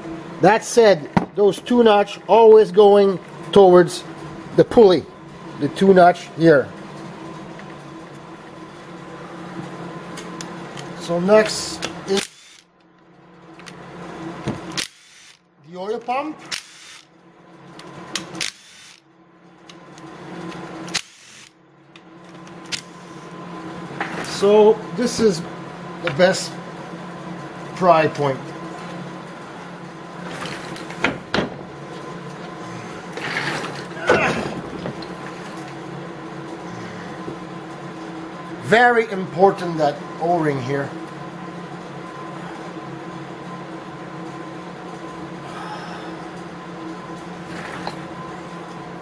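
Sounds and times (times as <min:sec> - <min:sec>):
steady low hum: 0:00.0 - 0:49.0
power driver motor hum: 0:09.2 - 0:12.8, 0:13.6 - 0:15.4, 0:16.0 - 0:17.1, 0:17.7 - 0:25.4
metal scraping and rattling: 0:30.2 - 0:35.8.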